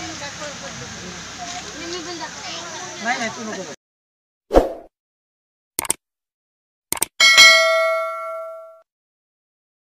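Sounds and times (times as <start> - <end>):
quick mouse clicks: 6.9 - 7.1
notification bell chime: 7.2 - 8.8.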